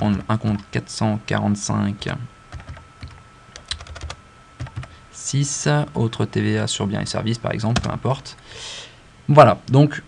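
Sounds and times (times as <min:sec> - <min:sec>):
typing on computer keyboard: 0:02.5 - 0:04.9.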